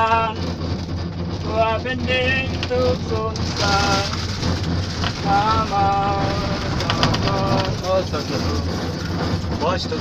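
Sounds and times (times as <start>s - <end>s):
cable car rushing noise: 0.0s - 10.0s
low hum: 0.0s - 10.0s.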